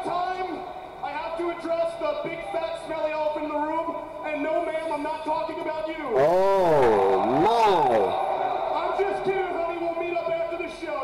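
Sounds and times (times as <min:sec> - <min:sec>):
man howling: 0:06.1 - 0:08.2.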